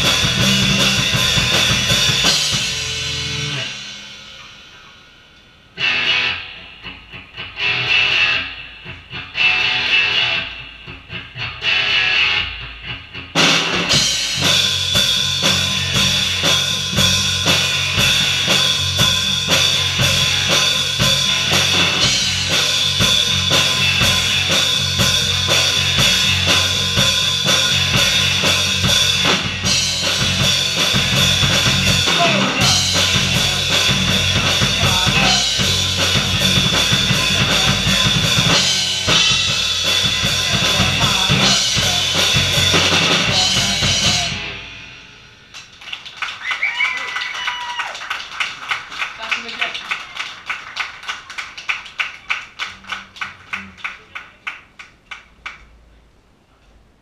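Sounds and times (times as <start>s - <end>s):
live rock band playing: 0.0s - 46.4s.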